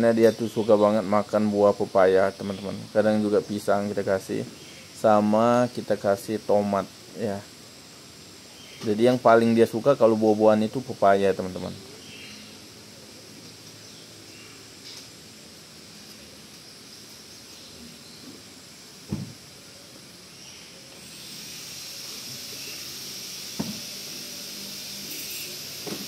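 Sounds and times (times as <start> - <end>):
steady background hiss: 0.0 - 26.0
dull knocks: 19.1 - 19.4.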